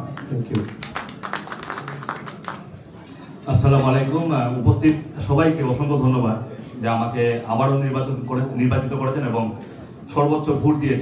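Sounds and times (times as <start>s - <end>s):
scattered clapping: 0.1s - 2.7s.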